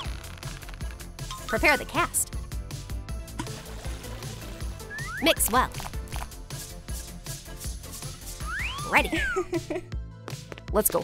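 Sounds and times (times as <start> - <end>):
background music: 0.0 - 11.0
water pouring into glass jar: 3.4 - 5.2.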